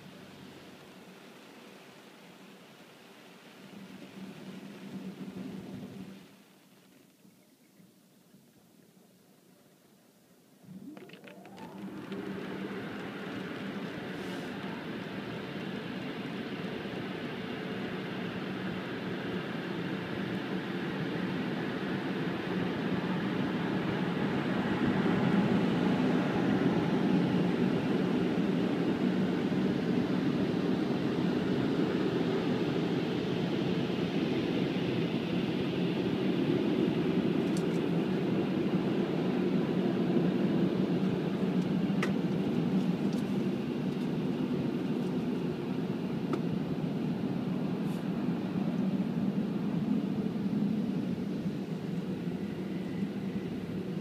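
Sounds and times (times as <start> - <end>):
car wash blowers rushing air: 0.0 - 6.4, 10.6 - 54.0.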